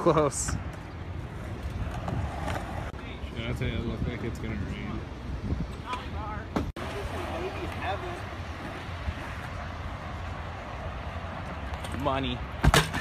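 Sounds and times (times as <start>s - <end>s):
low wind rumble: 0.0s - 12.6s.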